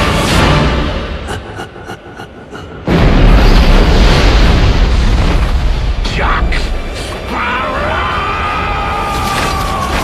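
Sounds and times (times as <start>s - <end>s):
dramatic trailer music: 0.0s - 10.0s.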